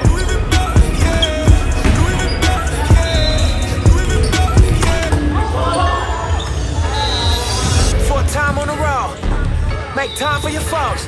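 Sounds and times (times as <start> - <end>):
low bass music beat: 0.0 - 5.4
players' voices: 0.0 - 11.0.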